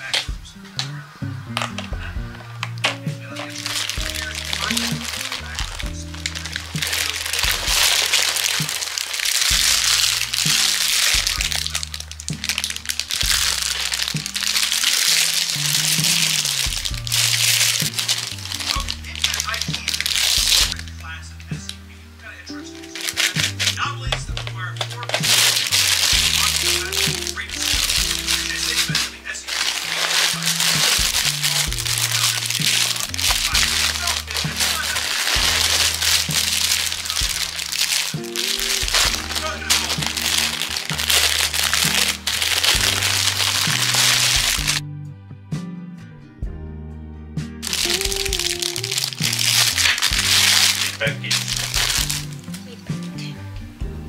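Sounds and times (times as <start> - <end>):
plastic packaging crinkling: 0.0 - 21.2, 22.5 - 44.8, 47.6 - 53.2
background music: 0.0 - 54.0.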